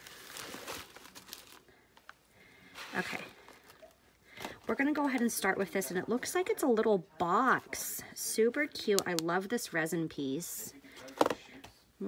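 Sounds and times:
paper rustling and crinkling: 0.0 - 4.6.

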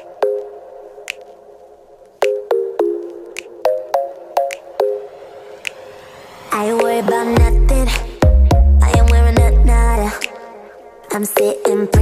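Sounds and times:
plucked synth pop music: 0.0 - 12.0.

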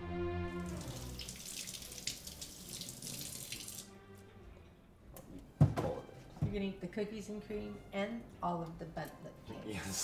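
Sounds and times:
orchestral music: 0.0 - 1.2
faucet water splashing into sink: 0.6 - 3.9.

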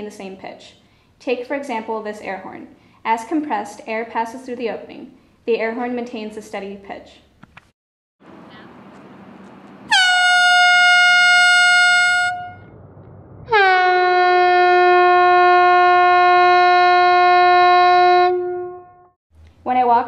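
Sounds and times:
compressed-air horn blasts: 9.9 - 12.6, 13.5 - 19.1.

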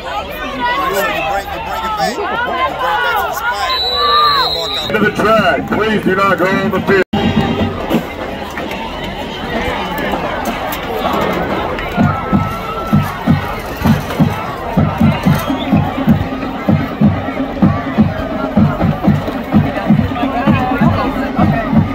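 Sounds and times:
crowd chatter: 0.0 - 21.9
marching band drums beating: 4.9 - 8.4, 10.1 - 21.9.

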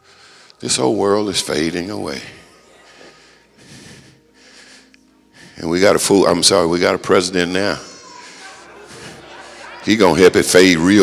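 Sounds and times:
man breathing into microphone: 0.0 - 0.6, 2.8 - 5.7.

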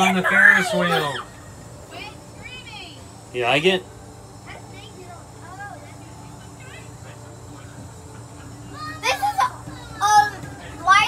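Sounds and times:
faint voices: 0.0 - 11.0
low hum: 0.0 - 11.0.

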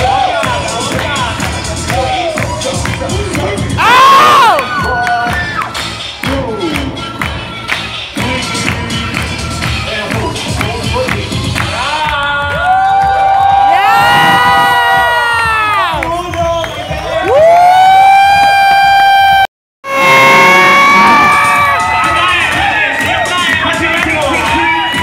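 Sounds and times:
dance music: 0.0 - 25.0
crowd cheering: 3.8 - 6.8, 12.1 - 25.0.

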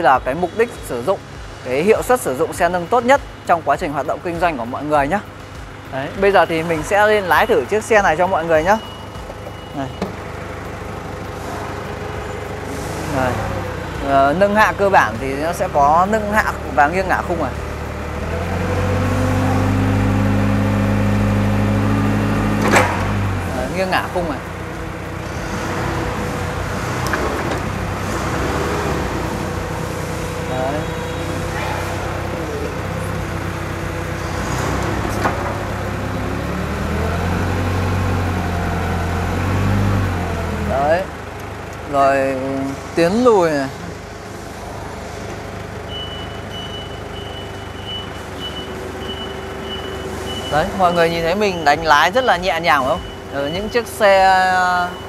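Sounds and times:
forklift engine running: 4.5 - 55.0
reverse alarm beeping: 6.3 - 10.3, 45.9 - 55.0
hydraulic lift raising: 17.7 - 23.5, 24.5 - 40.6.

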